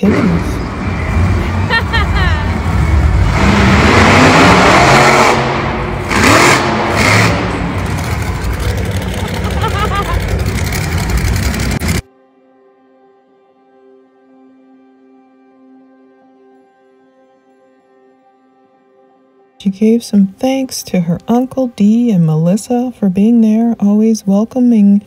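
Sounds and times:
monster truck engines revving: 0:00.0 - 0:12.0
crowd noise and voices: 0:07.7 - 0:11.8
faint background music: 0:12.0 - 0:25.0.

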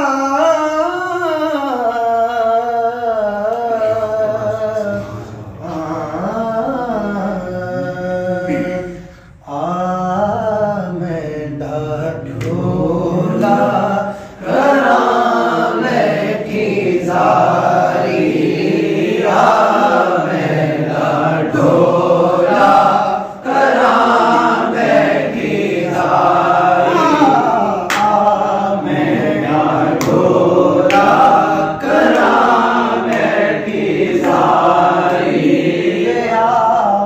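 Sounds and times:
man singing unaccompanied: 0:00.0 - 0:37.0
singer breathing: 0:08.9 - 0:09.5, 0:14.0 - 0:14.4, 0:23.2 - 0:23.4.

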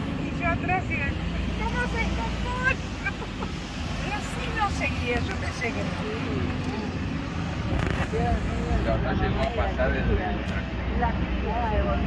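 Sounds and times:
moving vehicle rumble: 0:00.0 - 0:12.0
faint voices talking: 0:03.6 - 0:12.0.

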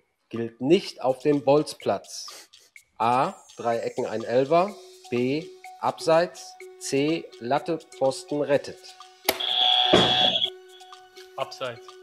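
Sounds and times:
buzzer button click: 0:09.3 - 0:10.5
high electronic buzzer beep: 0:09.3 - 0:10.8.

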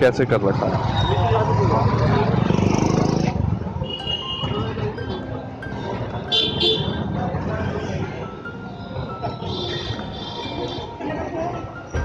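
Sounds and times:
street noise: 0:00.0 - 0:12.0
car horn toots: 0:06.3 - 0:07.0.

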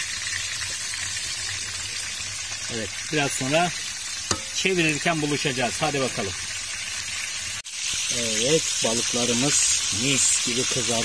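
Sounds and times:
fish sizzling in hot oil: 0:00.0 - 0:11.0.

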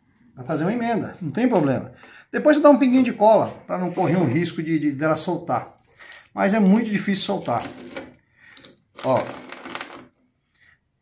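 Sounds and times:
man speaking: 0:00.4 - 0:07.8, 0:09.0 - 0:09.5.

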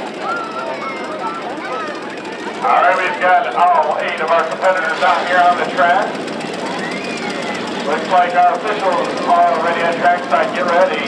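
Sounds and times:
car engines idling: 0:00.0 - 0:11.0
person talking: 0:02.6 - 0:06.2.

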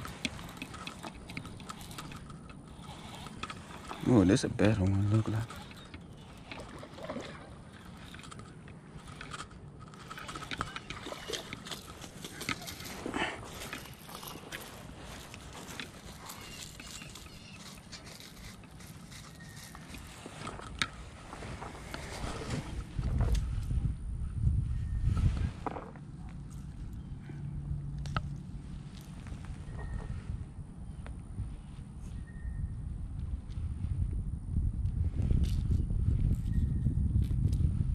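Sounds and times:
fishing reel clicks: 0:00.0 - 0:21.0.

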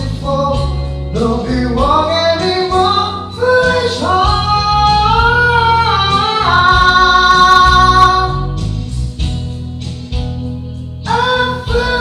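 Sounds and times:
man singing in high voice: 0:00.0 - 0:08.6, 0:11.0 - 0:12.0
instrumental accompaniment: 0:00.0 - 0:12.0.

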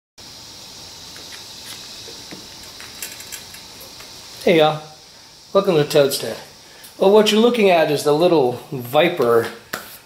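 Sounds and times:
faint room hiss: 0:00.2 - 0:10.0.

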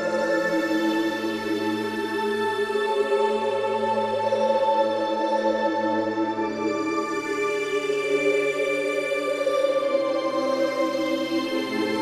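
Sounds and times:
slow music with held notes: 0:00.0 - 0:12.0.

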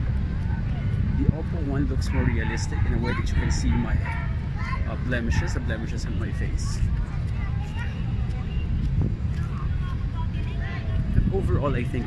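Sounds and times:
faint voices: 0:00.0 - 0:12.0
wind rumbling on microphone: 0:00.0 - 0:12.0.

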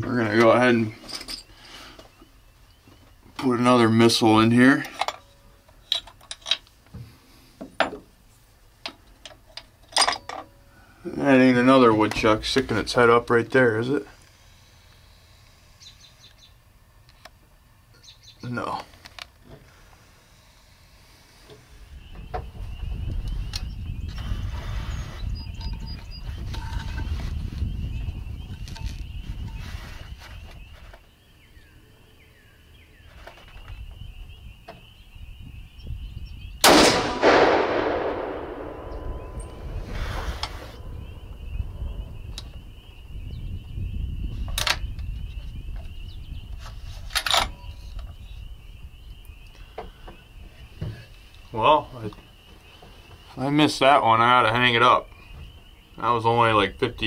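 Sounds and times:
rifle shot with long echo: 0:36.6 - 0:41.3
low rumble: 0:36.7 - 0:43.9.

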